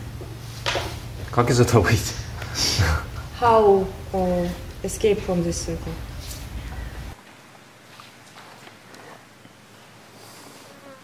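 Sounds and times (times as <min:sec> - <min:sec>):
faint insect buzz: 0:09.8 - 0:11.0.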